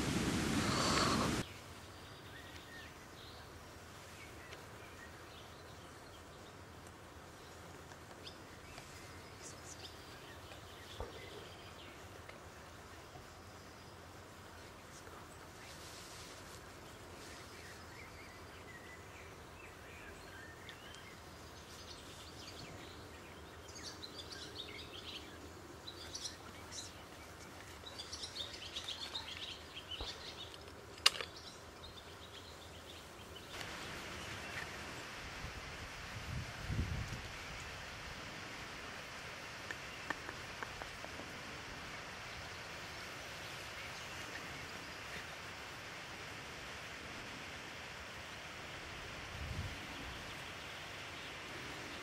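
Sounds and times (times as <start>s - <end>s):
steady rushing hiss: 0.0s - 52.0s
small birds chirping: 0.5s - 35.2s, 42.0s - 46.0s.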